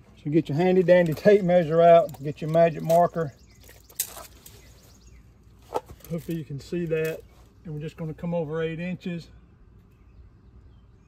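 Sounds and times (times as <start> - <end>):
outdoor background: 0.0 - 11.0.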